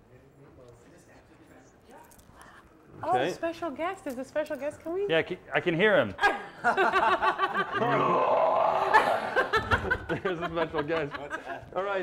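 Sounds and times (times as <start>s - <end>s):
men laughing: 6.4s - 12.0s
raspy growl-like noise: 7.8s - 9.2s.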